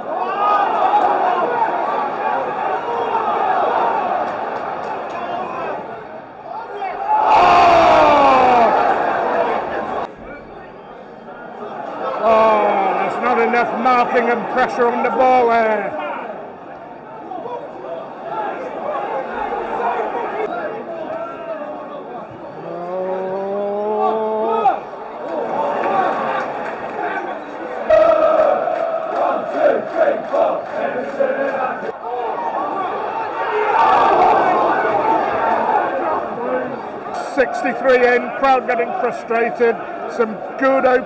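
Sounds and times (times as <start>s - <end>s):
stadium crowd noise: 0.0s - 41.0s
man's long rising shout: 7.3s - 9.0s.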